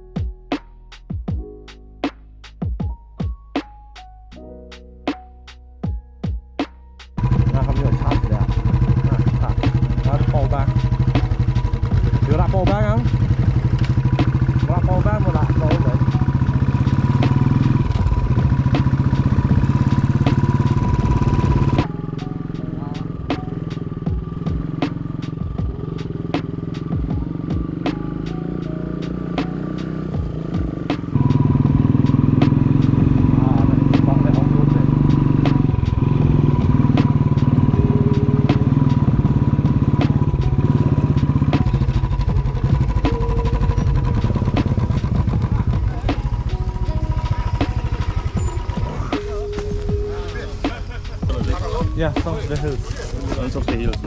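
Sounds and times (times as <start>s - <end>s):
motorcycle engine running: 7.2s - 54.0s.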